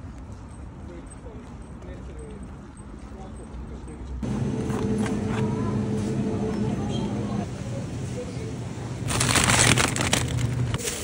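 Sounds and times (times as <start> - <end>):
low outdoor rumble: 4.2 - 10.8
refrigerated display cases droning: 4.2 - 11.0.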